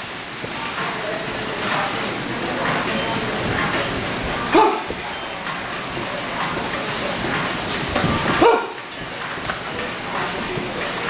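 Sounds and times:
busy gym din: 0.0 - 11.0.

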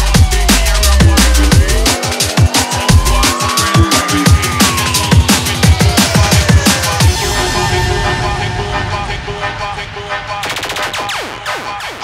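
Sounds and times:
drum and bass music: 0.0 - 12.0.

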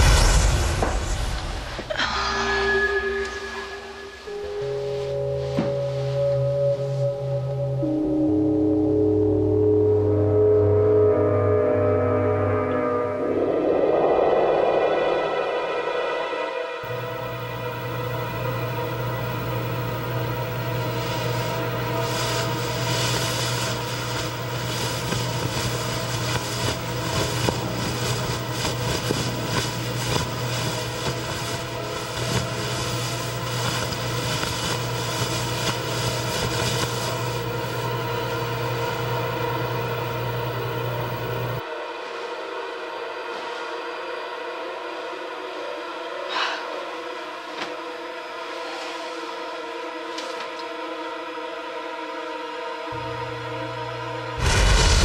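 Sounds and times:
low hum: 0.0 - 41.6, 53.0 - 55.0
eerie held tones: 1.7 - 41.8
crackling texture: 16.8 - 41.6, 54.4 - 55.0.

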